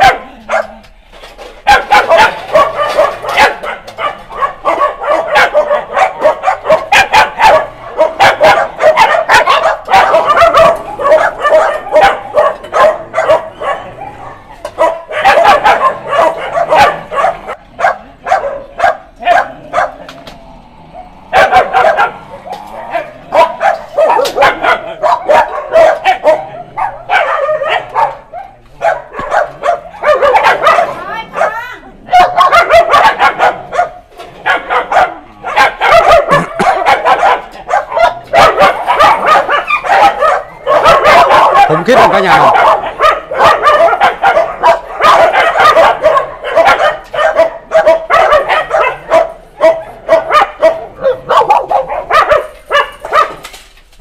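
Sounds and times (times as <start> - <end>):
dogs barking and yipping: 0.0 - 54.0.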